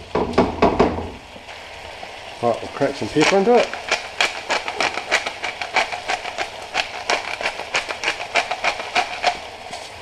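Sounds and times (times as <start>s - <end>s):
pepper mill grinding clicks: 3.1s - 9.4s.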